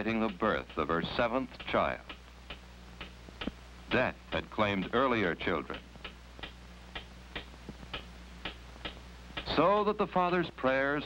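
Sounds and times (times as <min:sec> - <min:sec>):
clock ticking: 0:00.0 - 0:11.0
low steady hum: 0:00.0 - 0:11.0.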